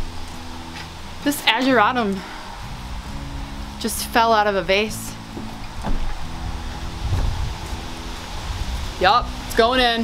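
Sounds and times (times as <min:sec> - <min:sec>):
wind on microphone: 0:02.2 - 0:10.0.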